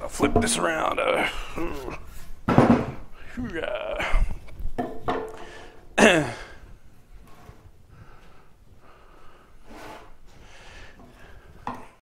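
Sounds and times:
man laughing: 0:01.0 - 0:02.1, 0:03.4 - 0:04.5, 0:06.0 - 0:06.6.

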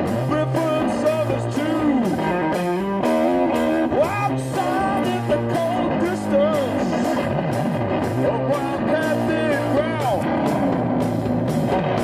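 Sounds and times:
blues-rock electric guitar: 0:00.0 - 0:12.0.

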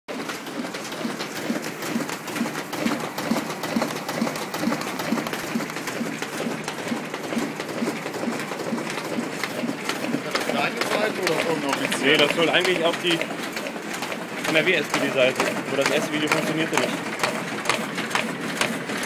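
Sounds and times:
printer feeding sheets: 0:00.1 - 0:19.0.

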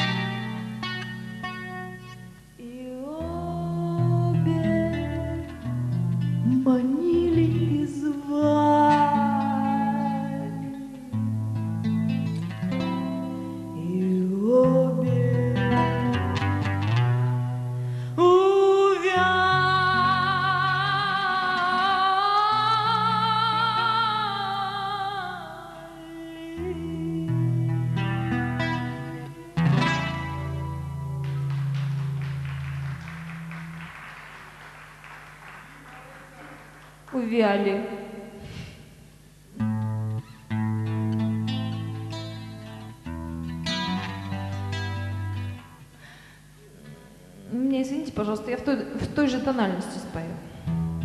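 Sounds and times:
acoustic guitar: 0:00.0 - 0:51.0
woman singing: 0:02.6 - 0:11.1, 0:13.7 - 0:17.6, 0:18.2 - 0:29.9
audience applause: 0:31.2 - 0:37.2.

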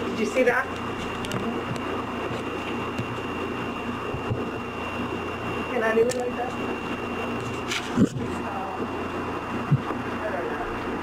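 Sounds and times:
background hiss and hum: 0:00.0 - 0:11.0
faint high whine: 0:00.0 - 0:11.0.

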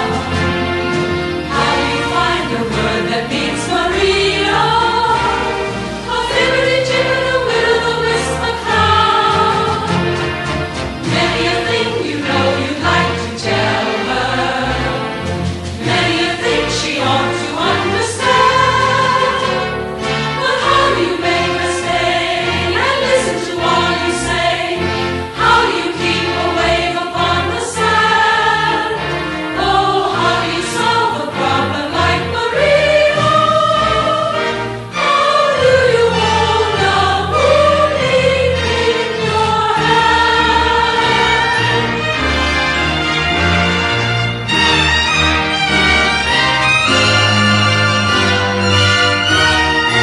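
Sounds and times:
choir singing: 0:00.0 - 0:50.0
instrumental accompaniment: 0:00.0 - 0:50.0.

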